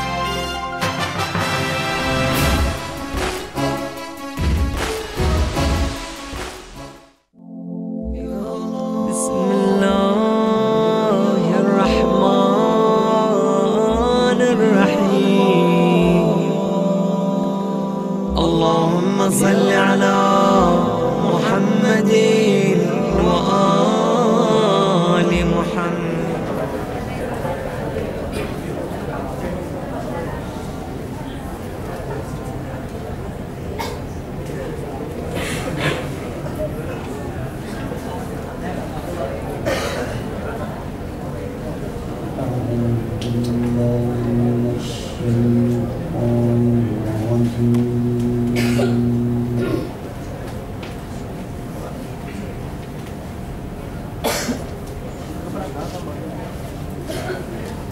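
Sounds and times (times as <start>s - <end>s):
steady low drone: 2.0s - 28.0s, 41.7s - 50.6s
man chanting melodically: 8.1s - 27.1s, 42.2s - 50.0s.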